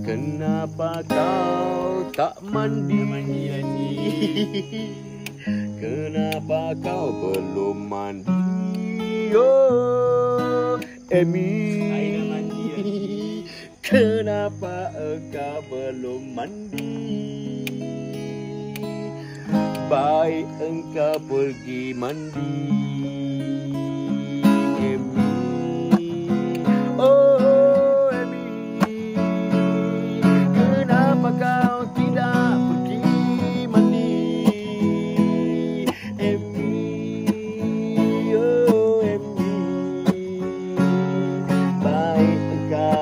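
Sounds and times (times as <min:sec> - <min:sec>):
man singing: 0:00.0 - 0:18.2, 0:19.2 - 0:43.0
acoustic guitar strumming chords: 0:00.0 - 0:43.0.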